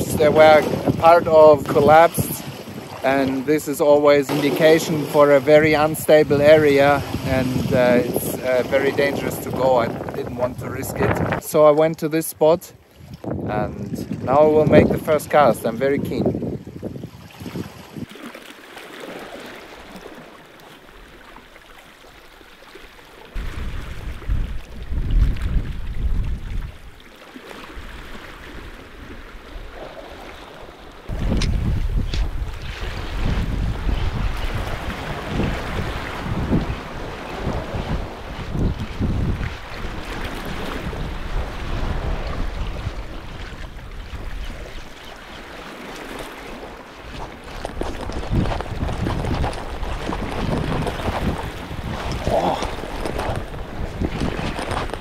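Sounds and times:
wind buffeting microphone: 0.0s - 3.6s, 4.3s - 11.5s, 12.8s - 18.1s, 23.4s - 27.0s, 31.1s - 55.0s
sea washing against rocks: 0.0s - 55.0s.

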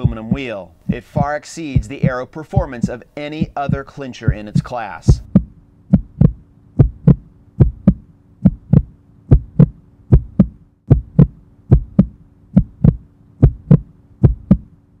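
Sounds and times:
heartbeat double thump: 0.0s - 14.7s
faint low hum: 0.0s - 15.0s.

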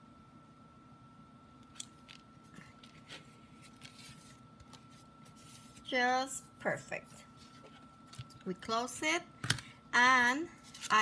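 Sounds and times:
faint high-pitched hum: 0.0s - 11.0s
paper clicks and rustles: 1.8s - 5.9s, 10.6s - 11.0s.

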